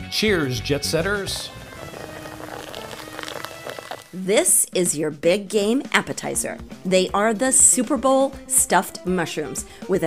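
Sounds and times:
soft background music: 0.0 - 10.0
sparkling wine fizzing in glass: 1.3 - 4.2.

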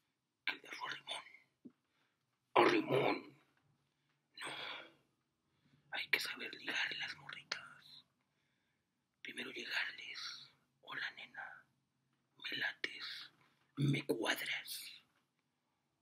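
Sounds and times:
man whispering: 0.5 - 1.5, 2.6 - 3.4, 5.9 - 8.1, 9.3 - 11.7, 12.4 - 15.1.

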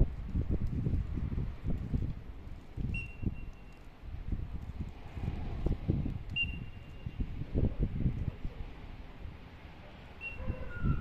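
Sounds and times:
wind buffeting microphone: 0.0 - 11.0
whistle blasts: 6.4 - 7.0, 10.2 - 11.0.

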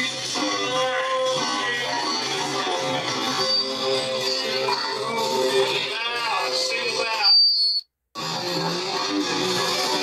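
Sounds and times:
music: 0.0 - 7.4, 8.2 - 10.0
chatter of voices: 0.3 - 7.3.

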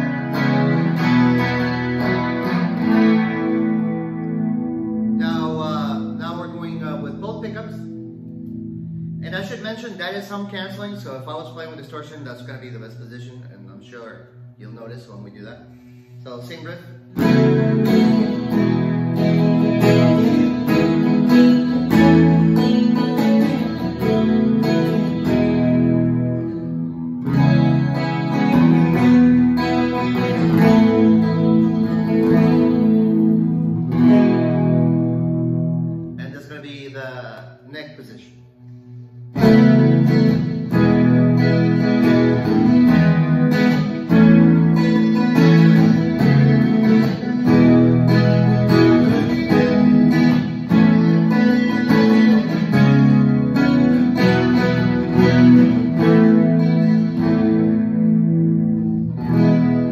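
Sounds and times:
electric guitar sustained tone: 0.0 - 37.0, 38.0 - 59.9
man talking: 5.2 - 8.0, 9.2 - 17.1, 36.2 - 38.5.

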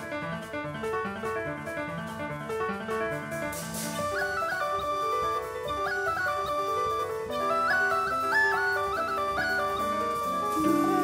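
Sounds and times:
drum kit: 0.0 - 11.0
piano: 0.0 - 11.0
flute melody: 3.8 - 11.0.

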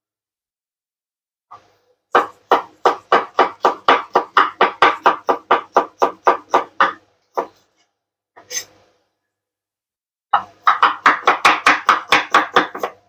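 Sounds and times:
knife chopping on wooden board: 2.1 - 7.6, 10.4 - 13.0.

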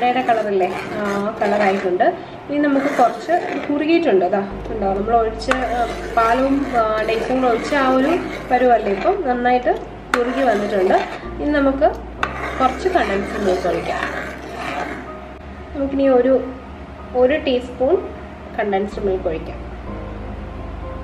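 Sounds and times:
ladle stirring thick liquid: 0.0 - 2.0, 2.6 - 3.9, 5.0 - 11.2, 12.2 - 15.2
woman talking: 0.0 - 12.0, 12.6 - 14.2, 17.2 - 19.6.

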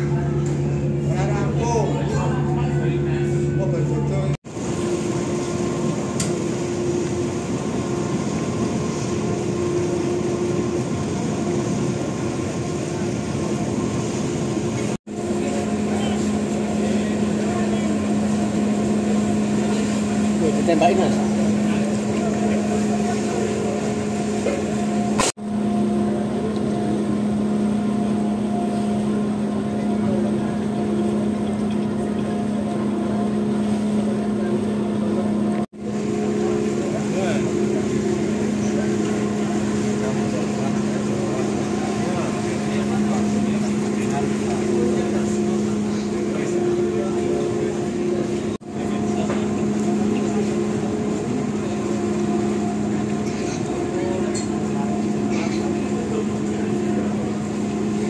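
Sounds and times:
faint voices: 0.0 - 4.4, 6.6 - 58.0
ship engines droning: 0.0 - 58.0.

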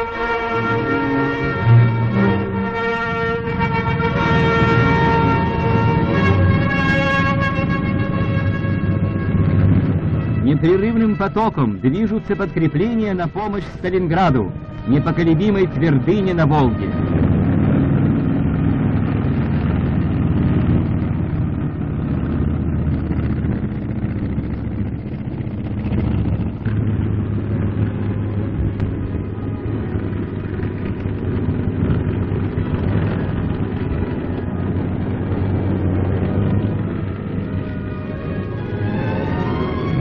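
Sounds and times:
truck engines rumbling: 0.0 - 40.0
faint music: 10.4 - 17.2.

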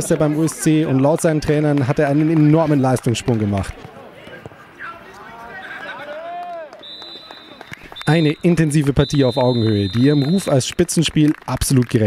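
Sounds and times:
players shouting: 1.6 - 10.7
steady high whistle tone: 6.8 - 10.6.

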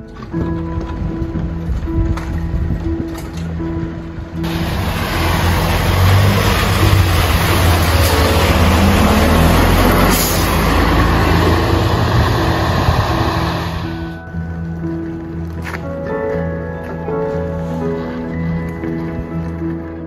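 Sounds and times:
faint background music: 0.0 - 4.5, 13.8 - 20.0
bus diesel engine rumbling: 4.0 - 14.3.

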